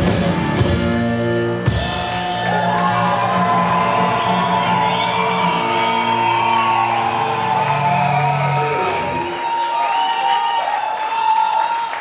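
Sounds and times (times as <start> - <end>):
live rock band playing: 0.0 - 9.4.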